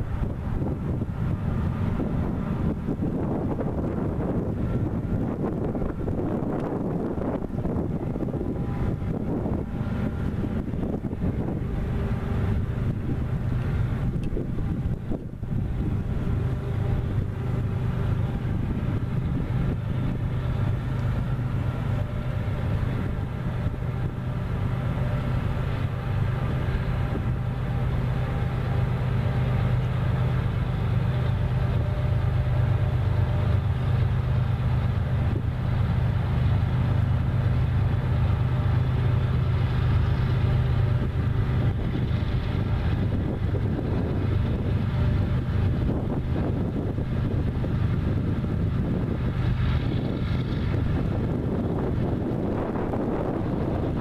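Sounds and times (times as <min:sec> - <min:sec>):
diesel locomotive engine hum: 0:00.0 - 0:54.0
wind noise on microphone: 0:00.0 - 0:54.0.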